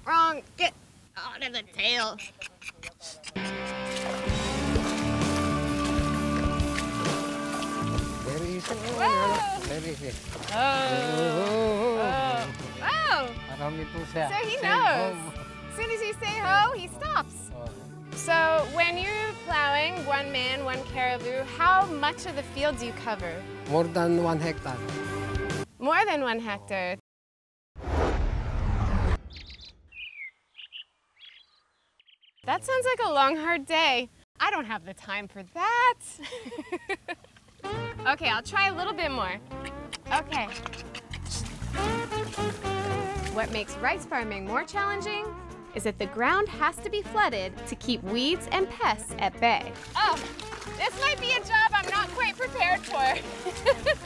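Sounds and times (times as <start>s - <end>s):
sustained music tones: 3.4s - 25.6s
small birds chirping: 29.3s - 32.7s, 39.5s - 41.6s.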